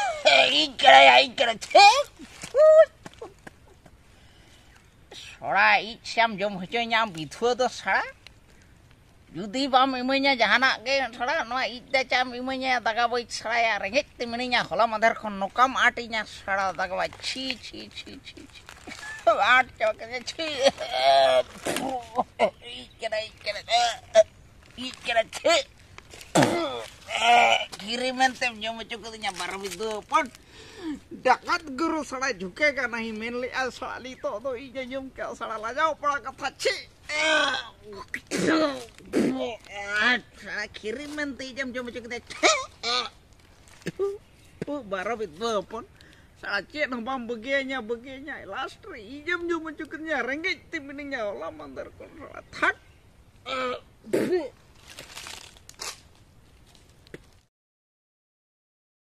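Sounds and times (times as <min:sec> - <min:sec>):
man wailing and crying: 0:00.0 - 0:03.4, 0:20.5 - 0:22.9, 0:36.6 - 0:38.8
breathy exhalations: 0:03.9 - 0:05.4, 0:30.4 - 0:31.2, 0:45.9 - 0:46.4
man coughing: 0:26.3 - 0:26.8
man groaning: 0:26.3 - 0:27.7.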